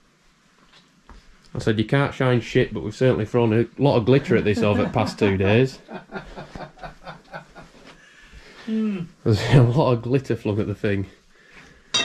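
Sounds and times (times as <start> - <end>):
man snickering: 4.2 - 7.9.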